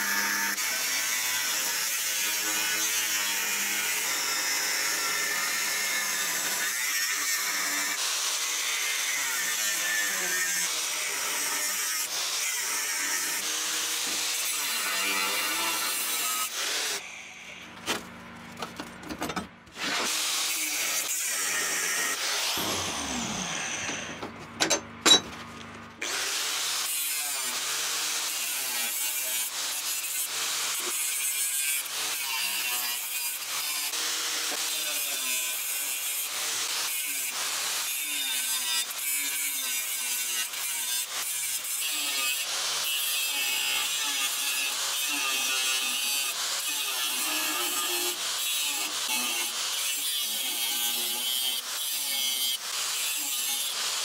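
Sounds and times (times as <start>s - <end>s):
angle grinder cutting steel: 0.0s - 17.6s, 19.7s - 25.3s, 26.0s - 54.0s.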